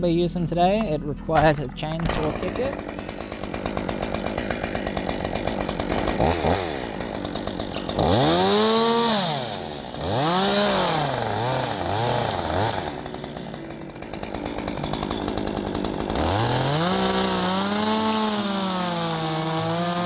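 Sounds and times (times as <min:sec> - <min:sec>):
chainsaw revving: 0:01.9 - 0:20.0.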